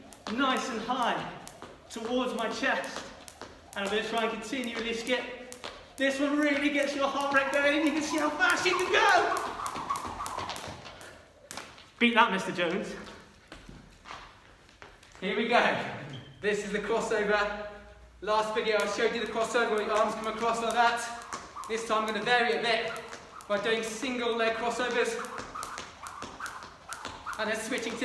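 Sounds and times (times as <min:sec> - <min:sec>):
feet and skipping rope tapping floor: 0:00.0 - 0:12.0, 0:12.7 - 0:15.2, 0:18.7 - 0:28.0
light foot landings: 0:18.8 - 0:28.0.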